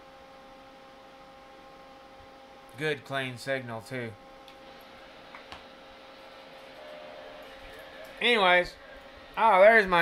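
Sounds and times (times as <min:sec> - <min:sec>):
electronics humming with hiss: 0:00.0 - 0:10.0.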